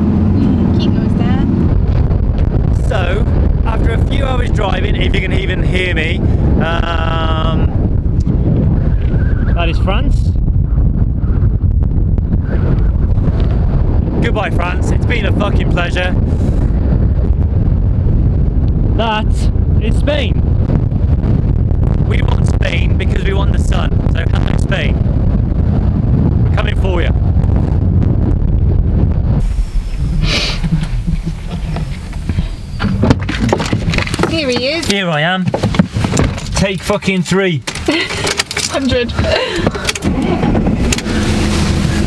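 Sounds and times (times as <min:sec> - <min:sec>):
road noise: 0:00.0 - 0:42.0
wind buffeting microphone: 0:00.0 - 0:42.0
sharp clicks and knocks: 0:30.6 - 0:41.1.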